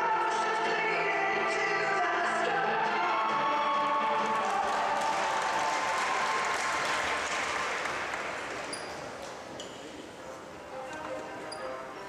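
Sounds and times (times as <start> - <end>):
music: 0.0 - 8.4, 9.5 - 12.0
audience applauding: 4.1 - 8.8.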